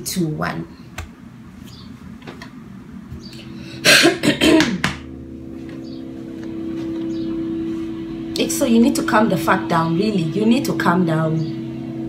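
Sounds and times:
low steady music drone: 2.7 - 12.0
person coughing: 3.8 - 5.0.

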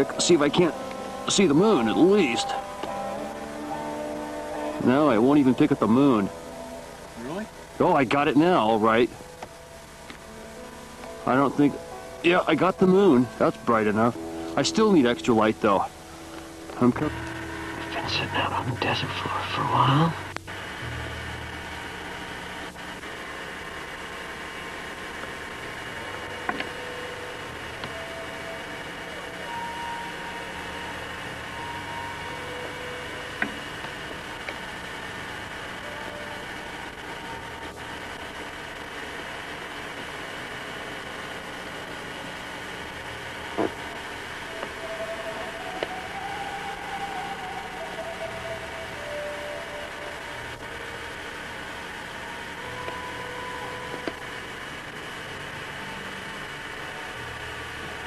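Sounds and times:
camcorder hiss and hum: 0.0 - 58.0.

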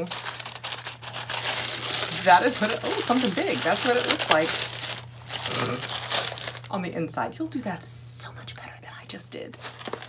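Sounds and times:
tissue paper crinkling: 0.0 - 6.8, 9.6 - 10.0.

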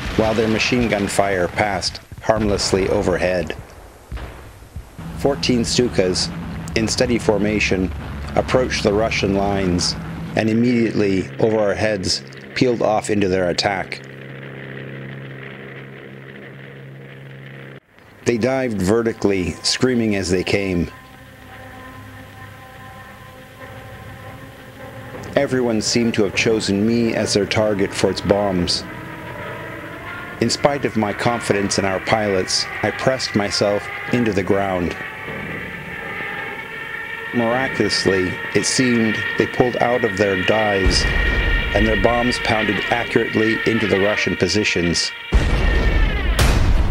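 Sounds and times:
propeller aircraft engines droning: 0.0 - 46.5
thin steady whine: 0.0 - 46.9.

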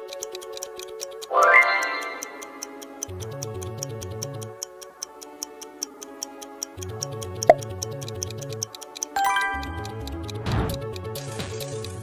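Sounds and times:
background music: 0.0 - 12.0
fast clock-like ticking: 0.0 - 12.0.

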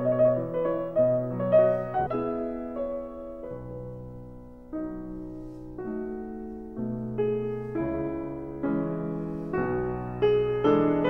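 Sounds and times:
slow piano melody: 0.0 - 11.0.

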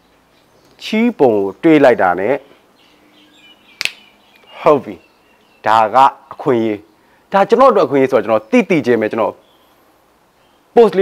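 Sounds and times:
faint bird chirps: 0.0 - 7.3, 8.2 - 10.8
sharp click: 3.8 - 4.5
man's voice: 5.6 - 9.4, 10.8 - 11.0.

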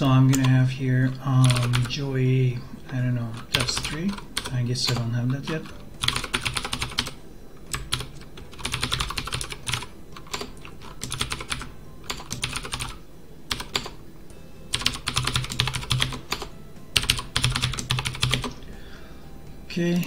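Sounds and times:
typing on computer keyboard: 1.4 - 2.0, 3.4 - 14.0, 14.7 - 18.6.

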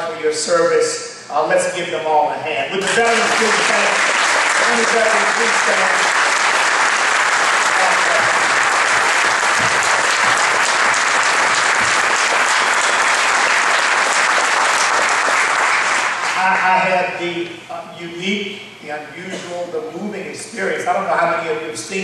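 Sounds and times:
audience applauding: 2.8 - 16.9.

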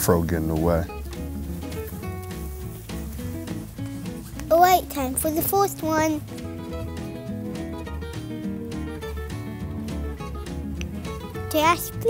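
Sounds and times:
plucked string tune: 0.0 - 12.0.

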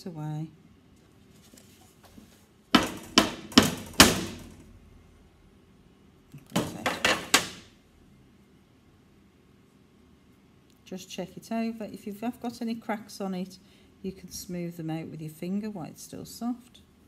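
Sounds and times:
plastic mould rapping on steel: 2.8 - 4.6, 6.6 - 7.7.

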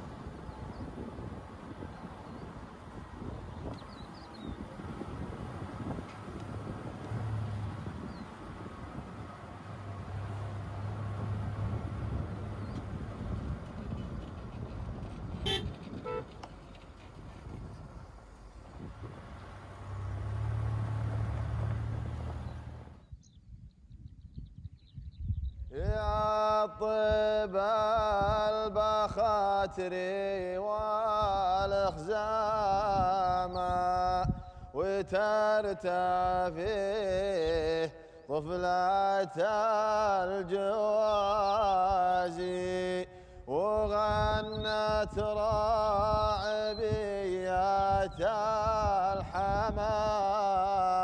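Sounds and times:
vehicle engine and tyre rumble: 0.0 - 26.4, 38.5 - 51.0
wind noise: 0.0 - 51.0
horn toot: 15.4 - 16.5.

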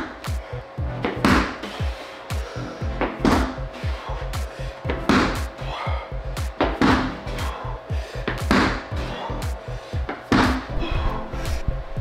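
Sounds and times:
music with beat and sliding bass: 0.0 - 12.0.

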